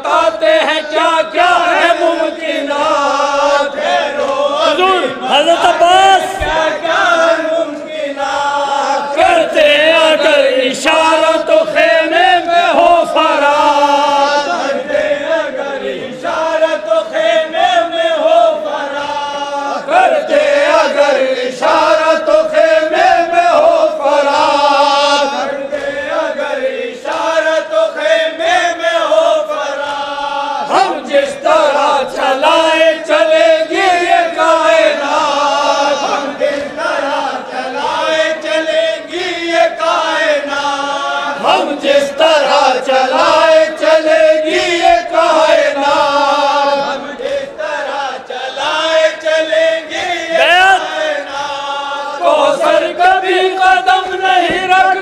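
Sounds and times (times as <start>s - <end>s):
lead reciter chanting: 0.0s - 55.0s
men chanting in unison: 0.0s - 55.0s.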